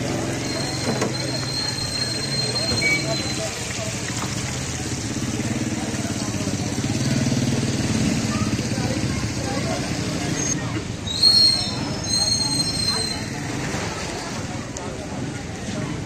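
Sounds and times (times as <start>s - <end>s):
people talking: 0.0s - 16.0s.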